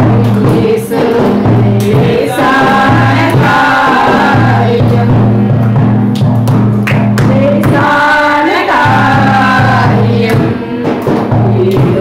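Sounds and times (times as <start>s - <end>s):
women singing worship song: 0.0s - 5.7s, 7.0s - 12.0s
instrumental backing with bass line: 0.0s - 12.0s.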